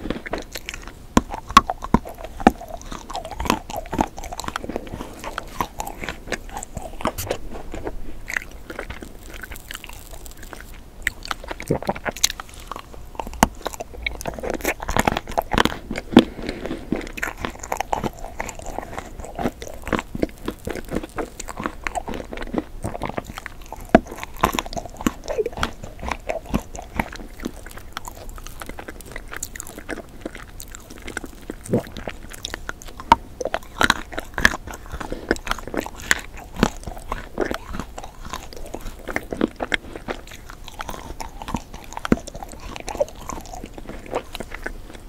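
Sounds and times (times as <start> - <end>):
chewing crunchy food: 0.0 - 45.0.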